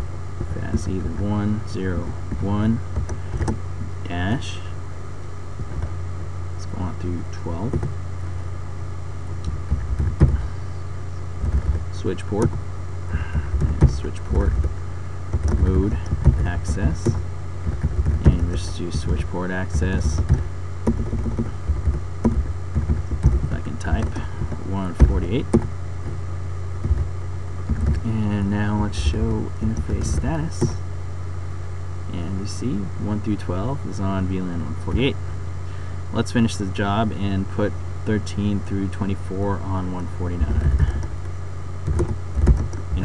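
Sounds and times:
low hum: 0.0s - 43.0s
keyboard keystrokes: 41.8s - 43.0s.

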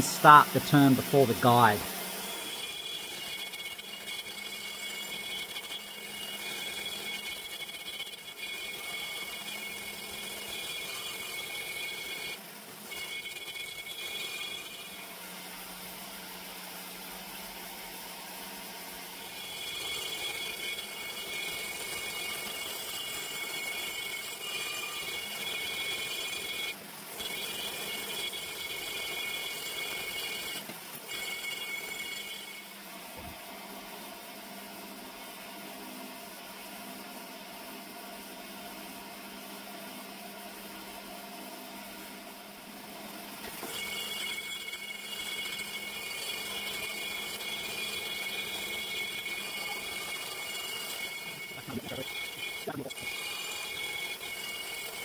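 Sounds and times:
die grinder whining: 0.0s - 17.6s, 19.1s - 33.4s, 43.4s - 55.0s.

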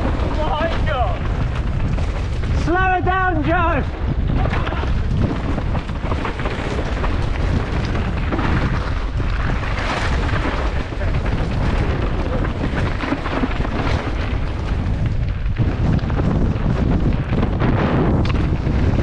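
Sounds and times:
bike rattling over rocks: 0.0s - 19.0s
wind buffeting microphone: 0.0s - 19.0s.

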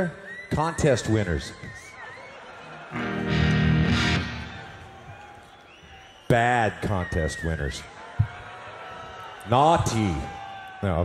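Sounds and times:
distorted electric guitar ringing: 3.0s - 4.8s.

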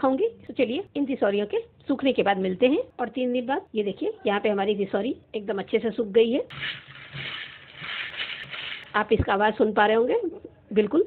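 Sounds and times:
dried pieces rattling in steel bowl: 6.5s - 9.1s.

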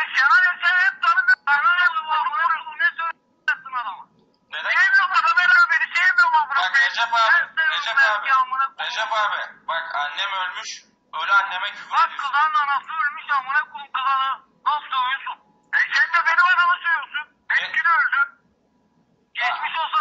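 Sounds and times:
voices talking over telephone: 0.0s - 18.5s, 19.3s - 20.0s.

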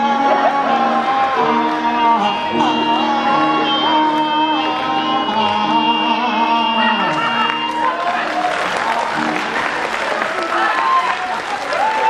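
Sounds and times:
audience applauding: 7.0s - 12.0s.

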